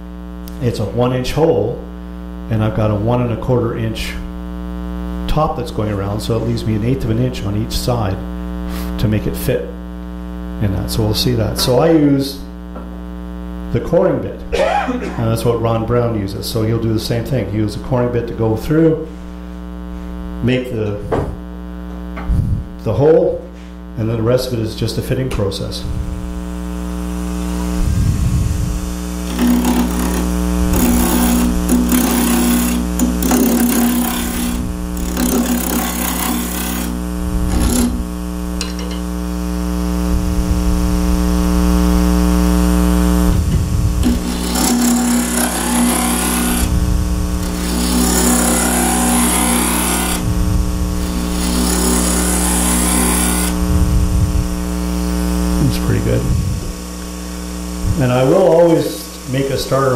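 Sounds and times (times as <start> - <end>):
wood lathe humming: 26.0 - 55.6
rough scraping and knocking: 29.3 - 39.0, 43.5 - 46.7, 47.4 - 50.2, 51.0 - 53.6.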